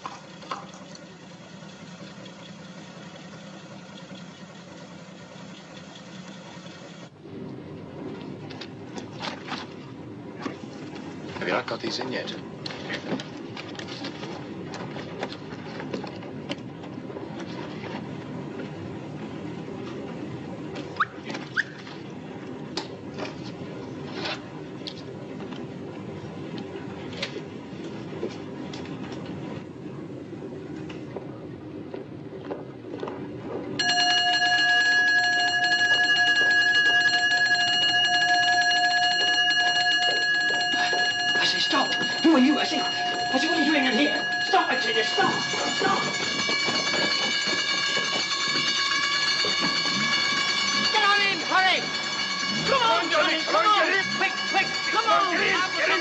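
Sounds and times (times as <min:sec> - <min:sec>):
electric alarm bell ringing: 0:33.8 - 0:56.0.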